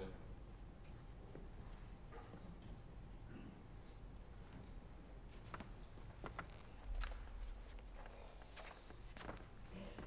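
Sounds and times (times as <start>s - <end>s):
footsteps on stage floor: 5.3s - 10.0s.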